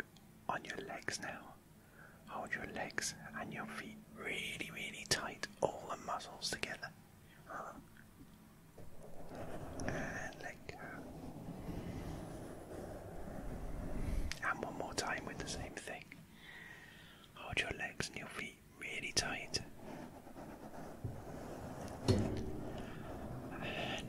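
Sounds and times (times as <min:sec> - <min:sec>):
brush rustling on microphone windscreen: 0:09.1 - 0:14.3.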